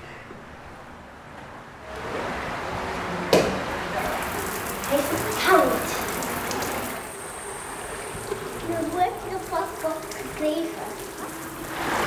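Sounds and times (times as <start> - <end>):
shower spraying water on tiles: 4.0 - 12.0.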